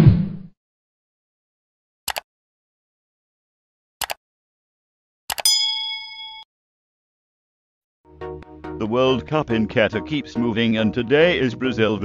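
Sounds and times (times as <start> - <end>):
bright bell ding: 5.4 - 6.5.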